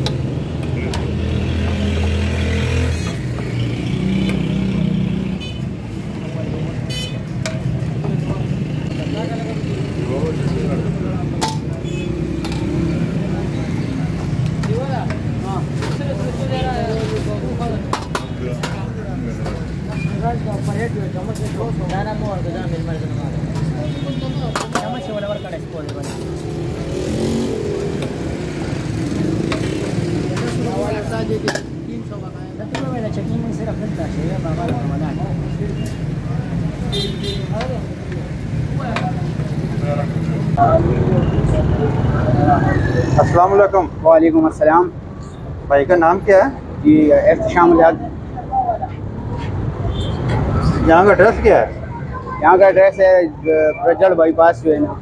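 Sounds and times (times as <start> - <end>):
vehicle engines running: 0.0 - 44.2
low hubbub of voices: 0.0 - 55.0.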